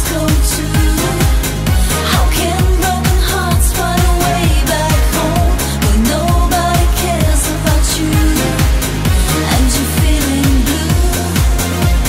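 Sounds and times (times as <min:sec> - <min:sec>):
disco pop song with singing: 0:00.0 - 0:12.0.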